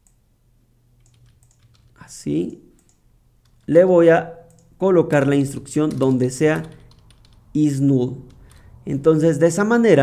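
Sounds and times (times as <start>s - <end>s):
low steady hum: 0.0s - 10.0s
computer keyboard keystrokes: 1.0s - 2.0s, 2.7s - 3.7s, 4.4s - 7.5s, 8.2s - 8.7s.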